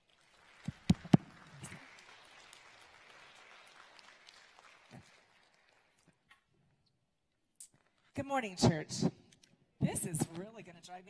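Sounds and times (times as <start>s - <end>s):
crowd applause: 0.0s - 6.2s
loud hand clap: 0.0s - 6.2s.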